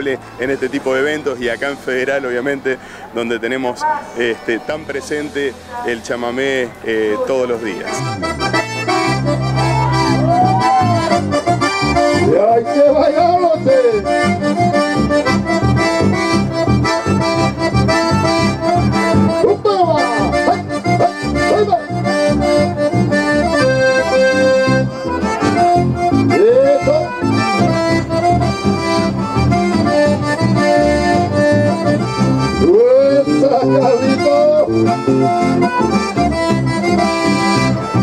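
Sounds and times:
piano accordion melody: 0.0s - 38.0s
guitar: 4.0s - 38.0s
electric bass: 4.8s - 38.0s.

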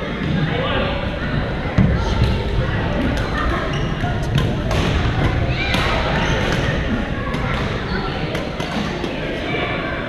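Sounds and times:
players' voices: 0.0s - 10.0s.

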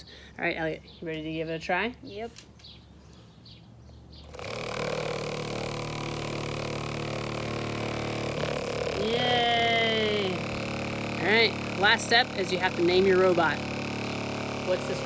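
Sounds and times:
small motor buzzing: 4.2s - 15.0s.

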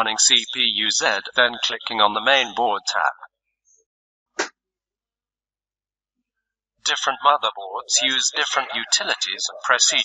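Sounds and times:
synthesized voice speaking: 0.0s - 3.3s, 6.9s - 10.0s.

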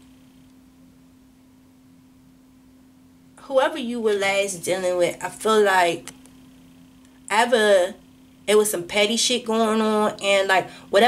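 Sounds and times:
faint steady low hum: 0.0s - 11.0s.

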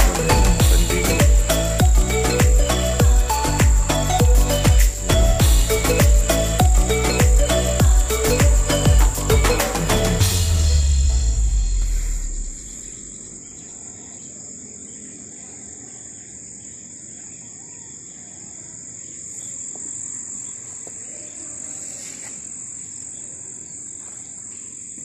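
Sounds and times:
music with a beat: 0.0s - 12.1s
crickets or cicadas chirping: 0.0s - 25.0s
faint outdoor background noise: 0.0s - 25.0s.

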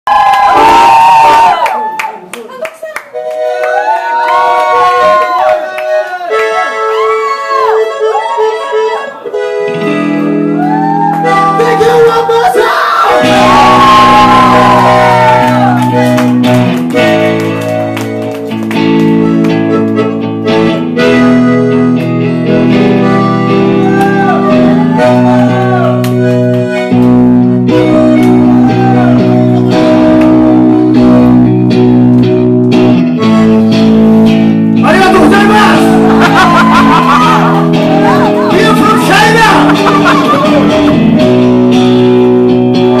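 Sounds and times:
audience cheering and shouting: 0.1s - 2.3s, 3.6s - 9.2s, 10.5s - 16.4s, 23.7s - 26.0s, 28.0s - 30.0s, 34.9s - 41.0s
guitar: 0.1s - 43.0s
accordion chords: 2.4s - 43.0s
scattered claps: 15.8s - 20.2s
voice over loudspeaker: 34.8s - 36.0s.

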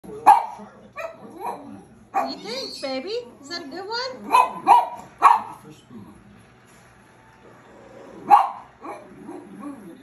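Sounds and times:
dog barking: 0.1s - 2.6s, 4.2s - 5.6s, 8.2s - 9.8s.

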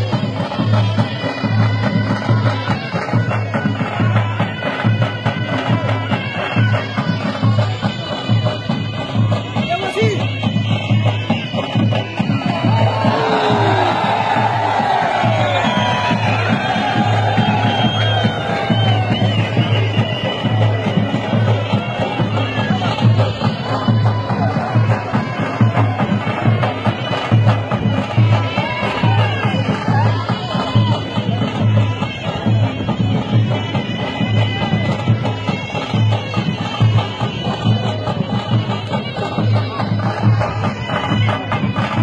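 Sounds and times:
crowd shouting and cheering: 0.0s - 42.0s
reedy bagpipe-like wind instrument: 0.0s - 42.0s
steady repeating drum beat: 0.0s - 42.0s.

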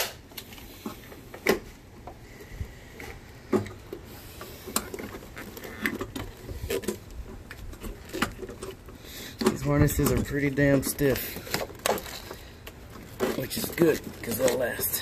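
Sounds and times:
plastic rustling: 2.9s - 15.0s
wiring harness clicks and knocks: 4.6s - 14.9s.

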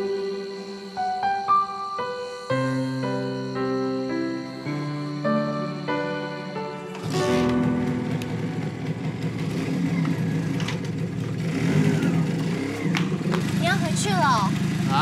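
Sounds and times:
motorcycle engine idling: 7.0s - 15.0s.

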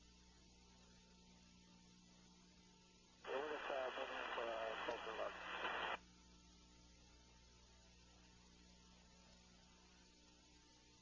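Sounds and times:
radio hiss: 3.2s - 6.0s
voice over tinny radio: 3.3s - 6.0s.

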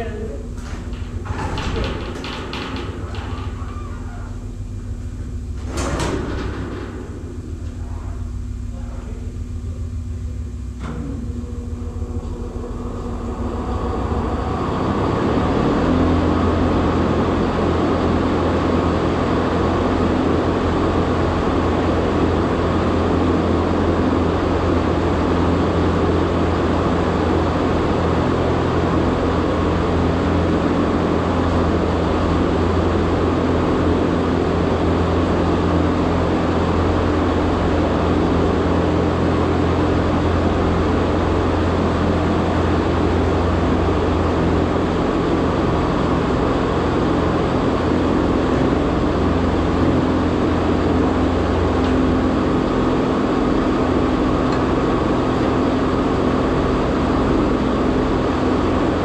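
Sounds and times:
large machine running loudly: 0.0s - 59.0s.

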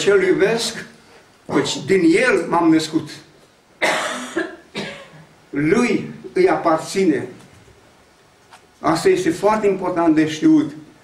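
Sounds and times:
person coughing: 3.8s - 5.3s.

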